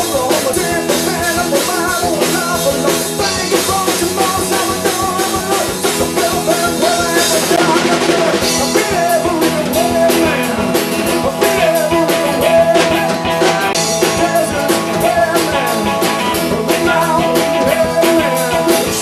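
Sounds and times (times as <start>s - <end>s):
drum beat: 0.0s - 19.0s
electric guitar: 0.0s - 19.0s
person singing: 0.0s - 19.0s.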